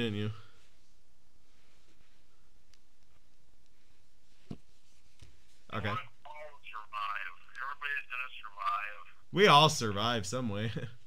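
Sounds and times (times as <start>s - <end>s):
steady faint hiss: 0.0s - 11.0s.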